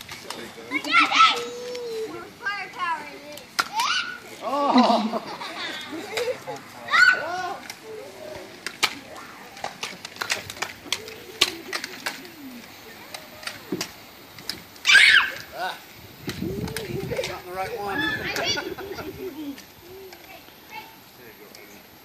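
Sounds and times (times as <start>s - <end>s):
people shouting and laughing: 0.0s - 20.3s
toy blasters clicking: 8.5s - 15.5s.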